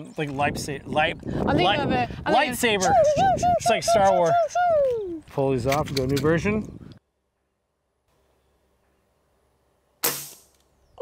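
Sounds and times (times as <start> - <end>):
air rifle shot: 10.0 - 10.5.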